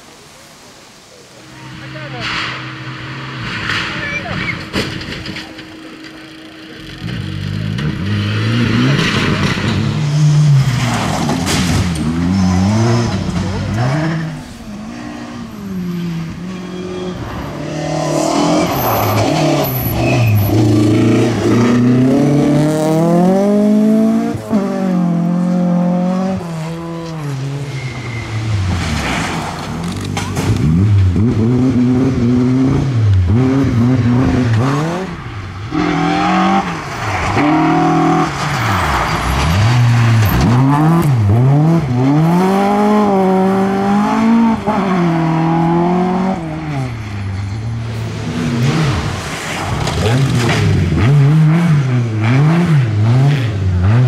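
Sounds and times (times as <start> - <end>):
rally car engine revving: 1.5 - 54.0.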